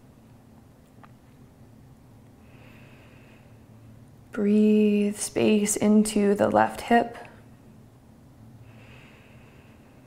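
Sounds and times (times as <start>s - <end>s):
faint room hum: 0.0s - 10.0s
soft breath through nose: 8.6s - 10.0s.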